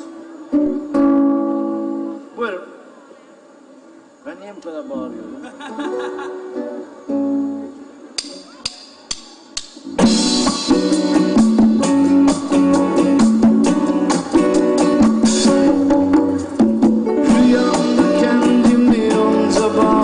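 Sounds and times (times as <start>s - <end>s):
rock band playing: 9.8s - 20.0s.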